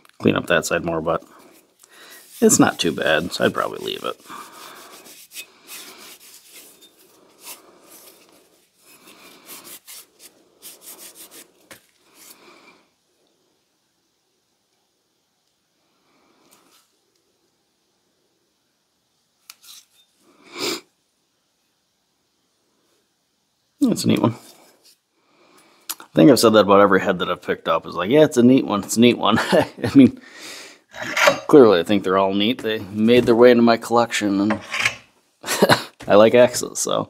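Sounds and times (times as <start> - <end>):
cloth rubbing on metal: 0.6 - 12.4, 31.0 - 35.1.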